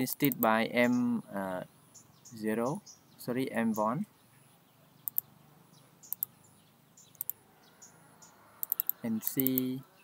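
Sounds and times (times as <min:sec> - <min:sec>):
computer mouse clicking: 0:05.0 - 0:05.3, 0:06.1 - 0:06.3, 0:07.1 - 0:07.4, 0:08.6 - 0:09.7.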